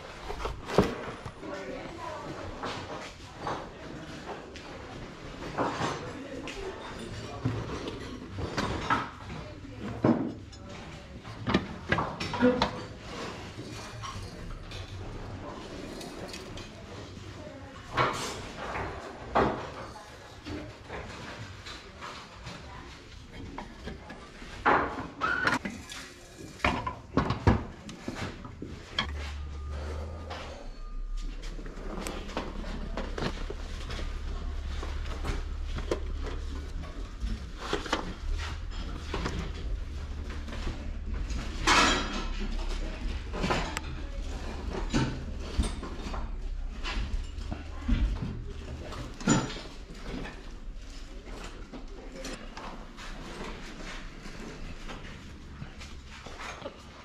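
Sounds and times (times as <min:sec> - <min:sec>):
objects knocking and scraping: 0:00.0 - 0:57.0.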